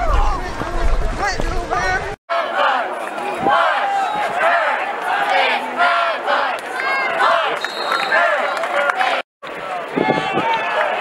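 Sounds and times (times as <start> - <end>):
spectators shouting and cheering: 0.0 - 11.0.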